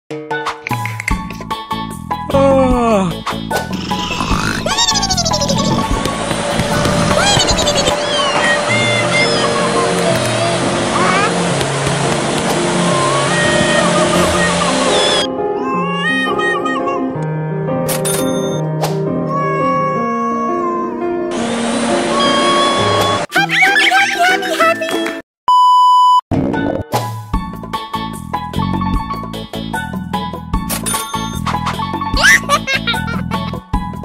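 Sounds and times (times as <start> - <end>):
background music: 0.1 - 25.2, 26.4 - 34.0
music with high wavering voice: 3.6 - 5.9, 6.6 - 11.4
rising glide: 3.7 - 15.3
loud steady rushing noise: 5.8 - 15.3
single-pitch test-tone beep: 25.5 - 26.2.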